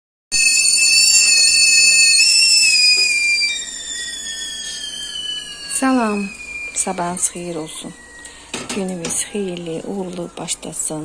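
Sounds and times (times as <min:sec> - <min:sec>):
kettle whistling: 0:00.3 - 0:10.5.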